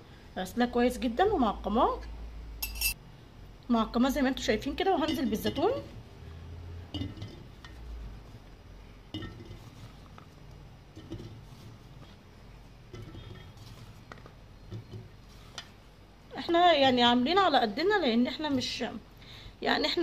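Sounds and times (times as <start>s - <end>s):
olives clinking against glass jar: 2.6s - 3.0s.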